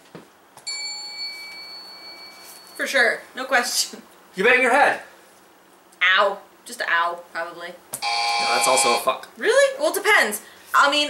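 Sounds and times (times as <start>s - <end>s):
bell ding: 0.7s - 2.8s.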